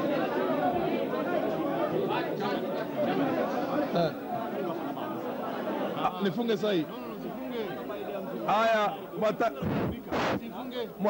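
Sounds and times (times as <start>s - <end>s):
man's voice through microphone: 8.6s - 11.0s.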